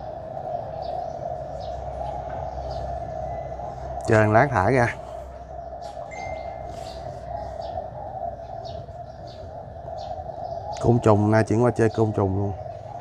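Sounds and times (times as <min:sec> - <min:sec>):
small birds chirping: 0:00.0 - 0:13.0
steady background hum: 0:00.0 - 0:13.0.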